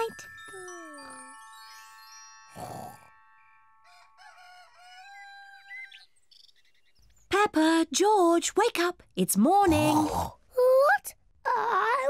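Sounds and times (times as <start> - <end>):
cartoon rooster crowing: 4.0 - 5.9.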